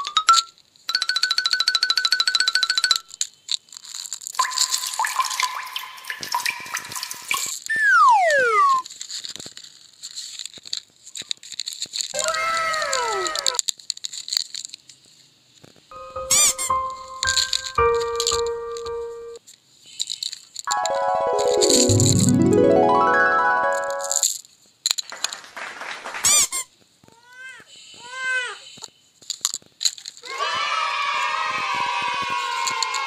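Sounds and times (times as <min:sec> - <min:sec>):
bell-like chiming tones: 0:15.9 - 0:19.4, 0:20.7 - 0:24.2
spreading sweep of tones: 0:15.9 - 0:19.4, 0:20.7 - 0:24.2.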